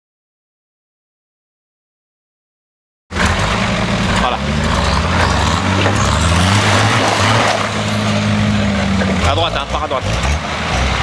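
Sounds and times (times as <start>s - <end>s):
pickup truck engine revving: 3.1s - 11.0s.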